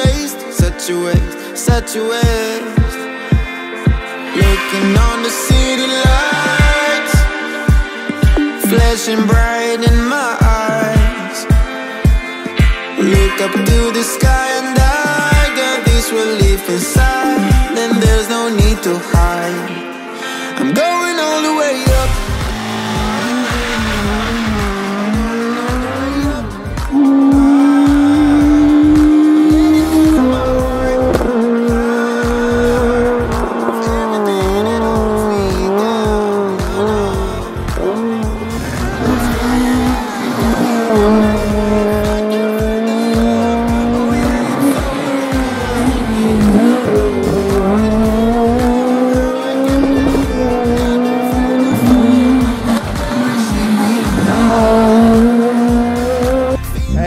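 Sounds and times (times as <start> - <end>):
background music: 0.0 - 57.0
tyres squealing: 21.8 - 56.7
rally car engine at high revs: 21.9 - 56.8.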